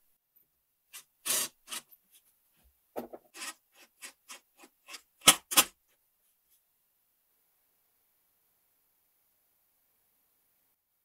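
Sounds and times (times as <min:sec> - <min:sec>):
cordless driver grinding into wood: 0:01.0 - 0:01.9, 0:03.3 - 0:05.7.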